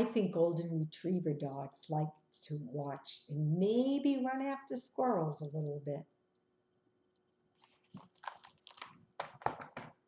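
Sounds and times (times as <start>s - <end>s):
book pages rustling: 7.5s - 10.0s.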